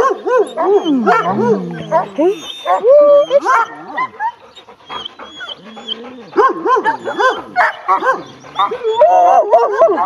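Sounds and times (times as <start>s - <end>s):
dog whining and crying: 0.0s - 10.0s.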